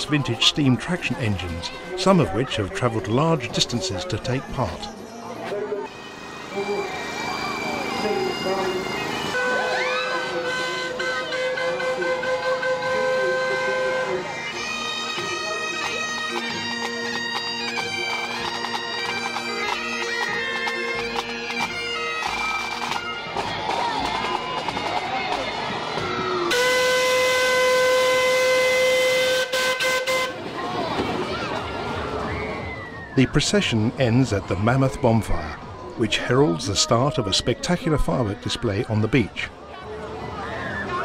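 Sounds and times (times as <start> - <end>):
crowd voices: 0.0 - 41.0
bagpipes playing: 5.9 - 30.4
steam engine whistle: 6.6 - 15.3, 26.5 - 30.4.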